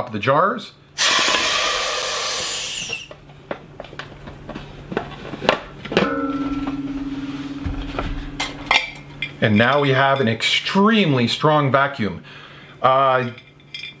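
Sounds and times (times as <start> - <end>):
air hissing through valve: 1.0 - 3.1
steady low hum: 3.1 - 14.0.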